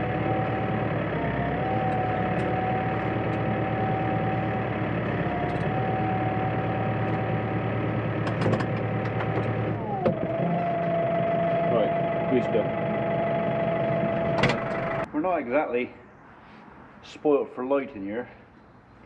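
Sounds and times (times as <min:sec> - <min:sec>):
steady whine: 0:00.0 - 0:15.1
tractor diesel engine idling: 0:00.0 - 0:15.1.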